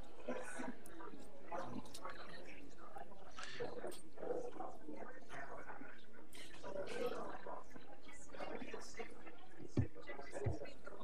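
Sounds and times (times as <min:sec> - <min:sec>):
people talking quietly: 0:00.0 - 0:11.0.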